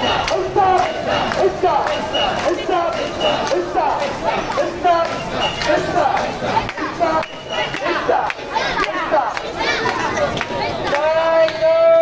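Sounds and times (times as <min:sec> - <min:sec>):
crowd shouting a chant: 0:00.0 - 0:12.0.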